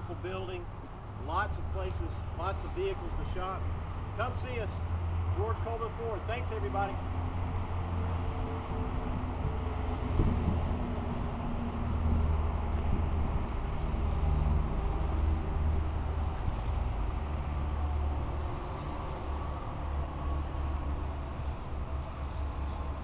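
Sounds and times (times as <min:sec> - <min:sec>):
vehicle engines rumbling: 0:00.0 - 0:23.0.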